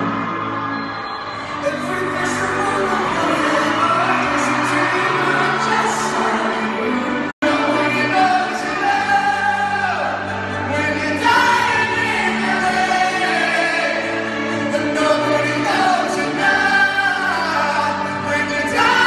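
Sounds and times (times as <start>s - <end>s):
crowd singing along: 0.0s - 19.0s
piano: 0.0s - 19.0s.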